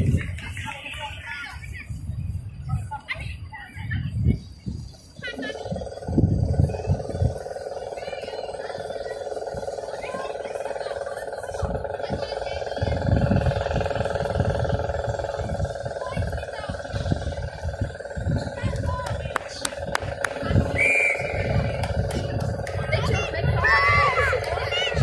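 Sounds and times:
steady droning hum: 0.0s - 25.0s
low rumble: 5.2s - 25.0s.

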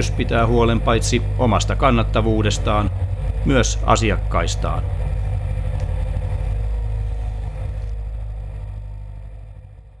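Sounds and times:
excavator engine humming: 0.0s - 10.0s.

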